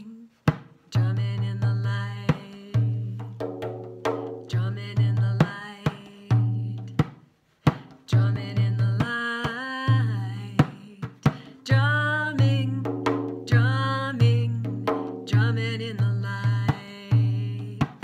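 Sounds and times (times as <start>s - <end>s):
woman chanting: 0.0s - 0.3s, 0.9s - 3.2s, 4.5s - 6.9s, 8.1s - 18.0s.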